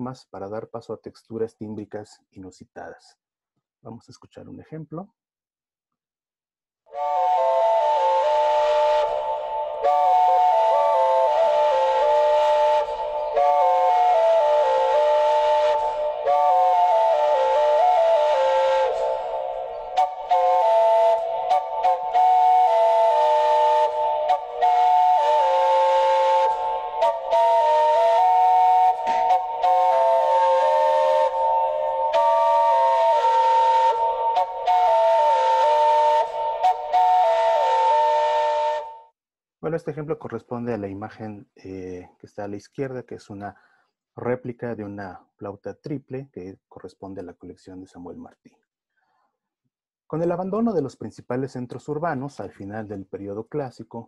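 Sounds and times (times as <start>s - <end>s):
triple flute melody: 6.9s - 39.2s.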